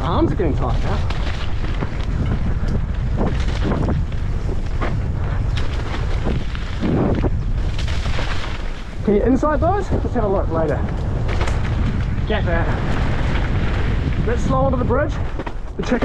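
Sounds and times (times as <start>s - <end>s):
bike rattling and knocking: 0.0s - 16.0s
bike tyres rumbling on gravel: 0.0s - 16.0s
wind buffeting microphone: 0.0s - 16.0s.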